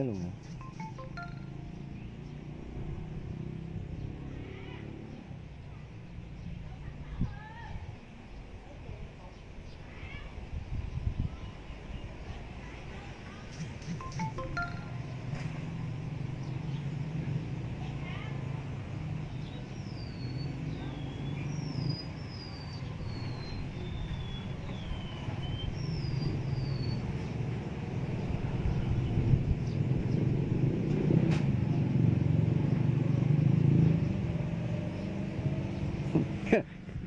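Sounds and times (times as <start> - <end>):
bird chirping: 0.0 - 2.6, 19.3 - 27.2
road traffic rumble: 0.0 - 37.0.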